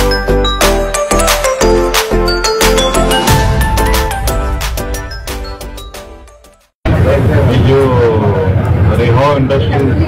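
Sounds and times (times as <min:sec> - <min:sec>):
loud steady low rumble: 0:06.8 - 0:10.0.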